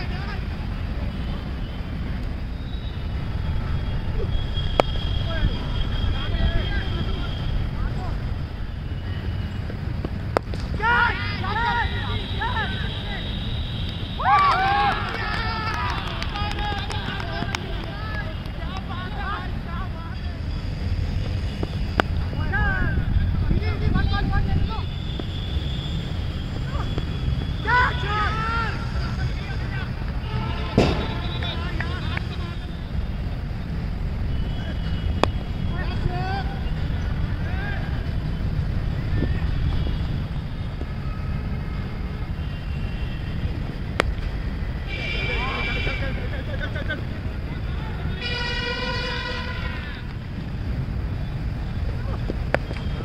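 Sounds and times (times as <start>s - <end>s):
distant players calling out: 10.7s - 20.7s, 21.7s - 33.0s, 34.3s - 41.6s
cricket bat hitting ball: 30.7s - 31.2s.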